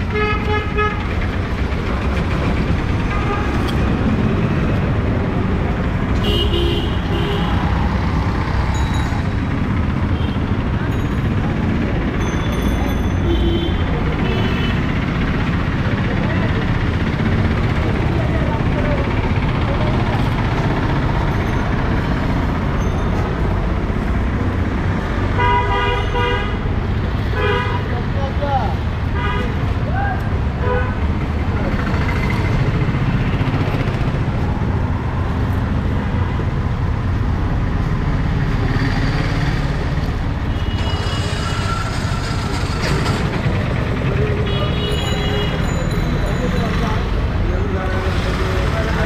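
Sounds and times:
traffic engines rumbling: 0:00.0 - 0:49.0
vehicle horns honking: 0:06.2 - 0:07.7, 0:25.4 - 0:26.7, 0:27.3 - 0:27.9, 0:29.1 - 0:29.6, 0:30.6 - 0:31.0, 0:44.4 - 0:45.9.

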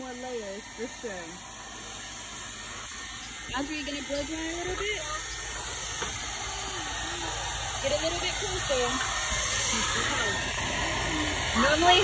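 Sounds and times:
hair dryer blowing: 0:00.0 - 0:12.0
faint voice: 0:06.6 - 0:07.6, 0:09.8 - 0:11.6.

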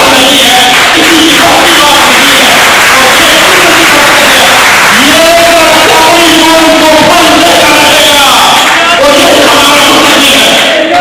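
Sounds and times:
man shouting into a microphone: 0:00.0 - 0:11.0.

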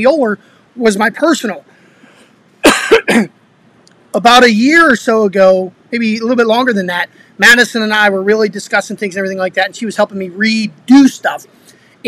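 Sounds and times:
man coughing: 0:02.6 - 0:03.3.

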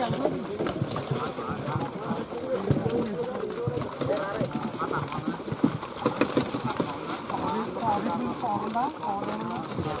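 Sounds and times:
fish splashing in net: 0:00.0 - 0:10.0
men talking over one another: 0:00.0 - 0:10.0.

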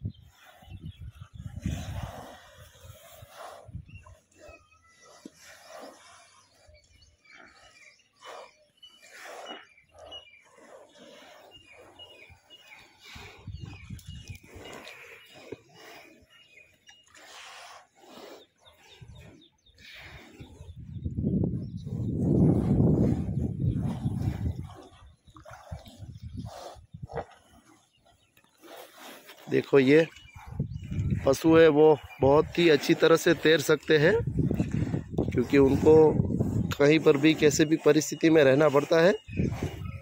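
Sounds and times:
buffaloes snorting breath: 0:00.0 - 0:40.0
water lapping: 0:00.2 - 0:40.0.

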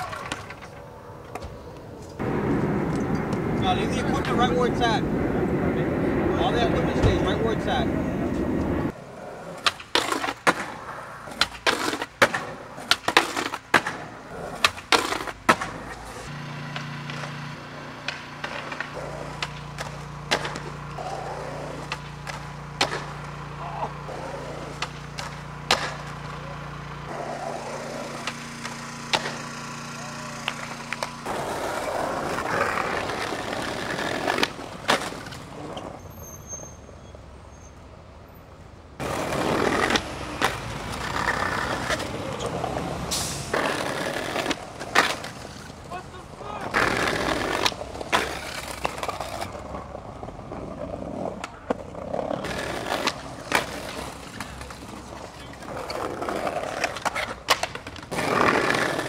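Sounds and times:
skateboard clacks: 0:00.0 - 0:04.7, 0:08.6 - 0:35.9, 0:39.0 - 0:59.0
skateboard wheels rolling on concrete: 0:00.0 - 0:59.0.

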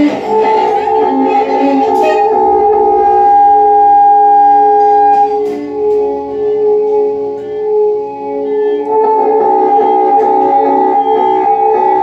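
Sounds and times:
violin: 0:00.0 - 0:06.8
alto saxophone: 0:00.0 - 0:12.0.

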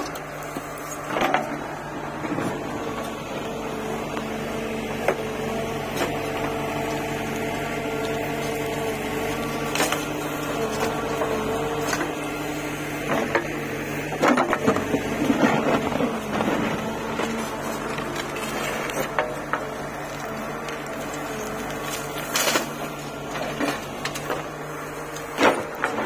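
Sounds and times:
diesel engine under load: 0:00.0 - 0:26.0
hydraulic whine: 0:00.0 - 0:26.0.

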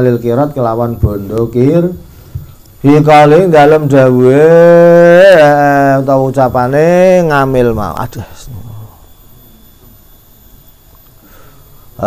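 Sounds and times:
quiet room hum: 0:00.0 - 0:12.0.

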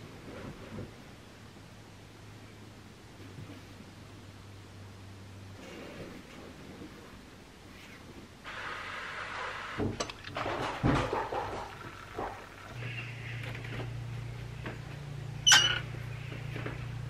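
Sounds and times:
low steady hum: 0:00.0 - 0:17.0.

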